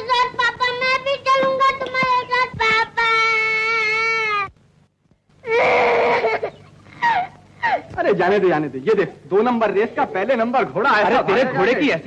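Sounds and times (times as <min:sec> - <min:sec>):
young child calling out: 0:00.0 - 0:04.6.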